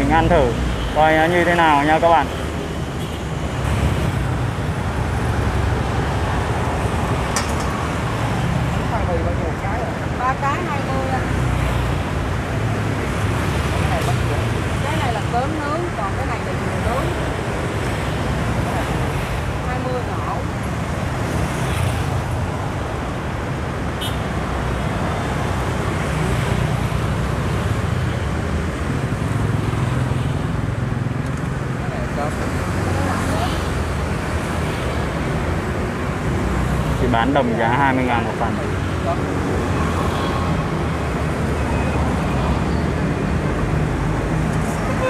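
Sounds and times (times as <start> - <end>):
motorbikes and vehicles passing: 0.0 - 45.0.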